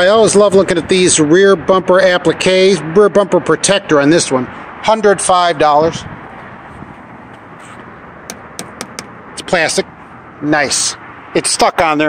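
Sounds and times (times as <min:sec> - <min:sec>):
fingertip taps on plastic: 0:08.3 - 0:09.1.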